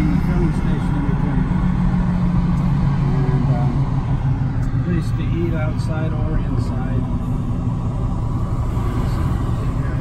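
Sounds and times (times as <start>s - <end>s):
road noise: 0.0s - 10.0s
vehicle engine hum: 0.0s - 10.0s.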